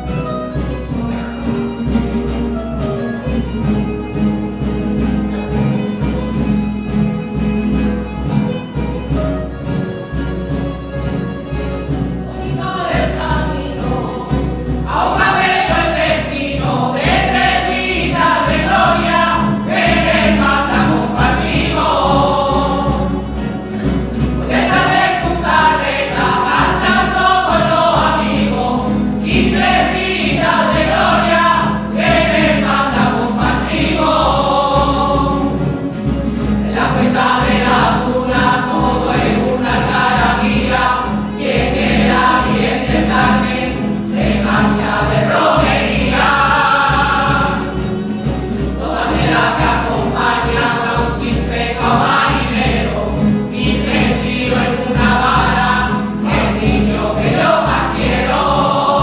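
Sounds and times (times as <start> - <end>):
strummed guitar: 0.0 - 59.0
mixed choir singing: 12.3 - 59.0.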